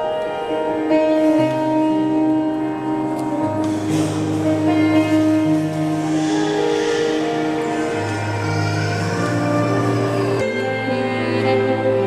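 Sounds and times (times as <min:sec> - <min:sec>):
slow electronic keyboard music: 0:00.0 - 0:12.0.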